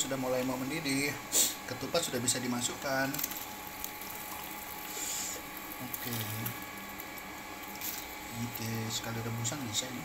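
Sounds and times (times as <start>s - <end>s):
water heating in a pot: 0.0s - 10.0s.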